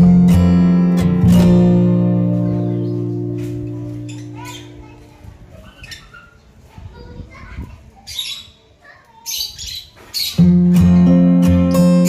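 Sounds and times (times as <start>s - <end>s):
strummed acoustic guitar music: 0.0s - 5.2s, 10.3s - 12.0s
lovebirds squawking: 3.9s - 5.0s.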